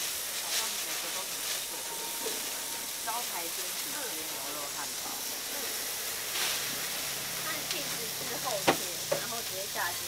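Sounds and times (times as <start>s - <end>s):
food sizzling on a griddle: 0.0s - 10.0s.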